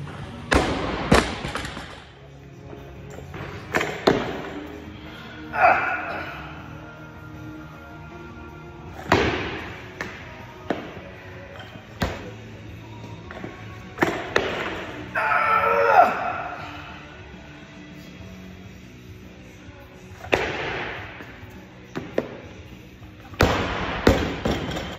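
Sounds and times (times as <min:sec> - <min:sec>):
music playing: 0:00.0 - 0:24.9
barbell dropped and bouncing: 0:23.4 - 0:24.9.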